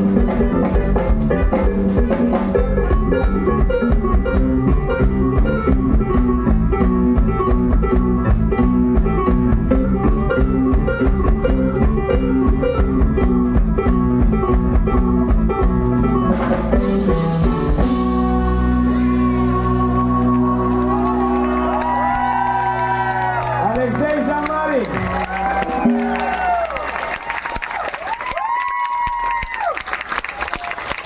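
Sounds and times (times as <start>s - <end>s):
congas and drums rhythm: 0.0s - 21.0s, 21.8s - 29.6s
keyboard chords: 0.0s - 26.6s
bass guitar line: 0.0s - 28.5s.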